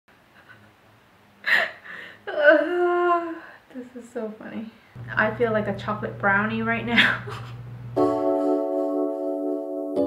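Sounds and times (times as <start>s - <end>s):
woman humming: 2.2s - 3.5s, 6.9s - 8.1s
woman speaking: 2.3s - 7.5s.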